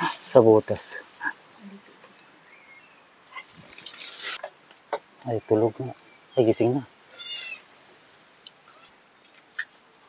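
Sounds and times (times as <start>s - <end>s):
cat meowing faintly: 7.2s - 7.6s.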